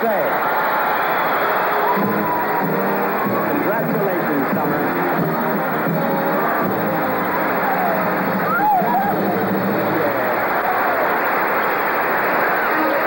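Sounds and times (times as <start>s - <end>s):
crowd noise: 0.0s - 13.0s
excited wavering voices: 0.0s - 13.0s
band music with held notes: 1.7s - 11.4s.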